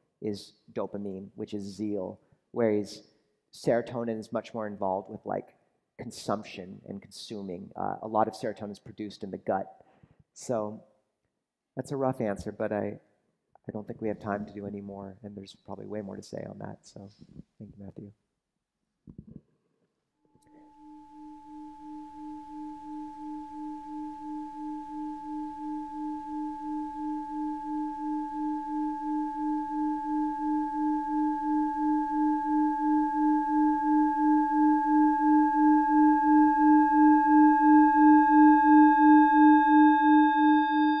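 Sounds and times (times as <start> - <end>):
singing bowl ringing: 20.4 - 41.0.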